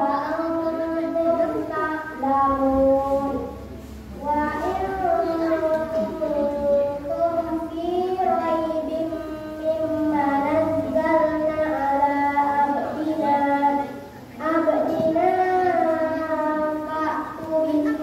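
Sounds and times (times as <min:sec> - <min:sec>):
child singing: 0:00.0 - 0:18.0.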